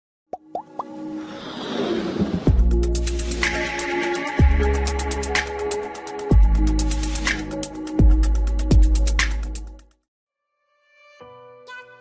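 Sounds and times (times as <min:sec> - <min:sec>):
electronic music: 0:02.5 - 0:09.8.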